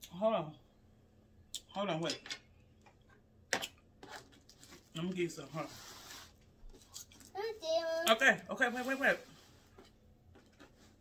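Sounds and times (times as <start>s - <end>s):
rustling handling noise: 4.0s - 7.4s.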